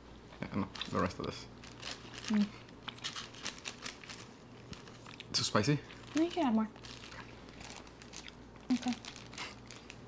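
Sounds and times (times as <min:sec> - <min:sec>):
plastic bag crinkling: 0:00.6 - 0:10.0.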